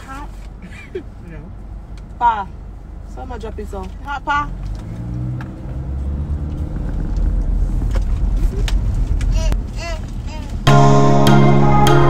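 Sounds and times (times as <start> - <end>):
car cabin rumble: 0.0 - 10.7.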